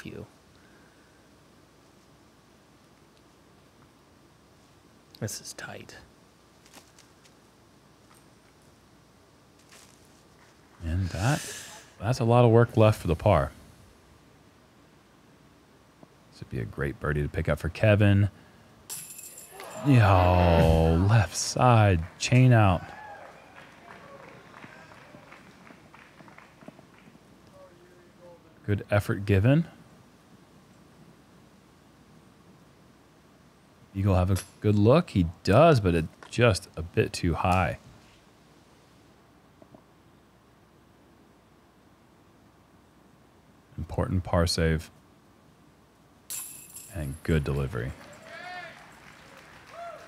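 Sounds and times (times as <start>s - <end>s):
disc striking metal chains: 18.9s - 19.9s, 46.3s - 47.3s.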